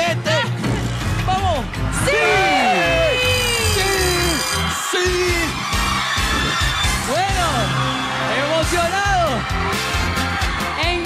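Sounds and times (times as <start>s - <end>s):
game-show music with low beat: 0.0s - 11.0s
people screaming in celebration: 1.9s - 11.0s.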